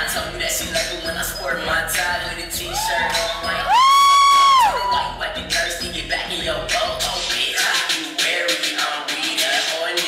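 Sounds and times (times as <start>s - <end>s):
hip-hop dance music: 0.0s - 10.0s
loud high whoop: 2.7s - 5.1s.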